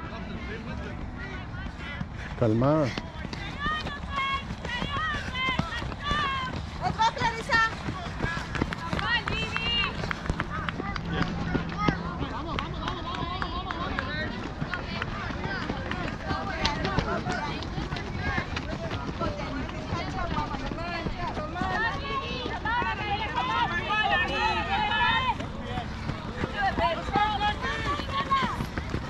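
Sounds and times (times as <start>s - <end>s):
runners' footsteps on dirt: 0.0s - 29.0s
spectators shouting and cheering: 21.6s - 28.6s.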